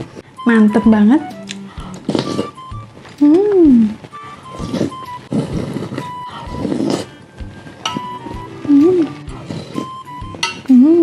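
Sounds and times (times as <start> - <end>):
light background music: 0.0 - 11.0
person humming mmm: 1.3 - 11.0
chewing: 1.6 - 10.8
slurping soup: 1.8 - 2.8, 4.0 - 10.4.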